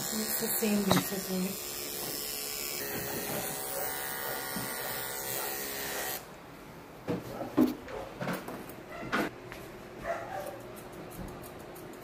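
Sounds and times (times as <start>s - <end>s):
electric clippers buzzing: 0.0s - 6.3s.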